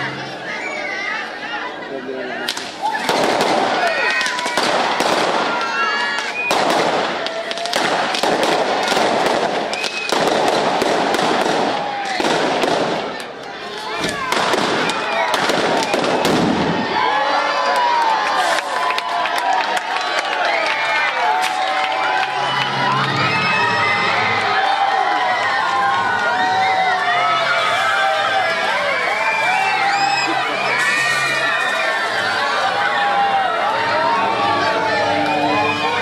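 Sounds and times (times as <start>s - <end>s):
children shouting and screaming: 0.0s - 6.5s, 20.3s - 36.0s
firecrackers crackling: 2.4s - 23.2s, 24.1s - 33.0s.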